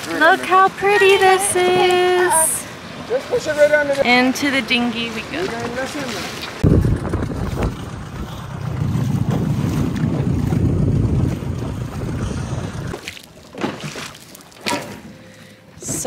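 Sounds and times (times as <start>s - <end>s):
wind rumbling on microphone: 6.5s - 13.1s.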